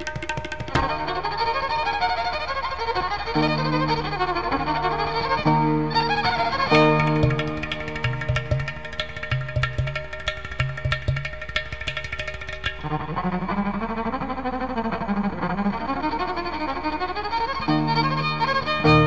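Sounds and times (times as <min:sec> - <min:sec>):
rapid percussion strokes: 0:00.0 - 0:01.0, 0:07.0 - 0:13.0
double violin melody: 0:00.0 - 0:11.2, 0:12.7 - 0:19.0.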